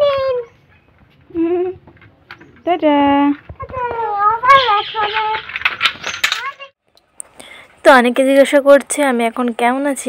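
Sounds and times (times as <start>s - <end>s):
child speaking: 3.5s - 5.5s.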